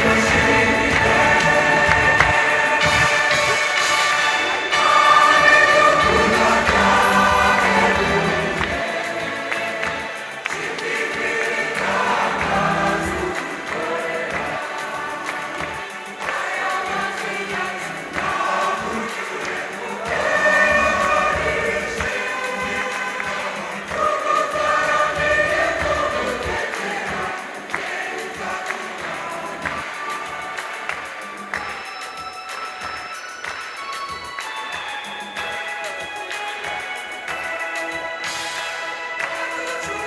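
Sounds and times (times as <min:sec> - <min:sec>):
choir singing gospel song: 0:00.0 - 0:40.0.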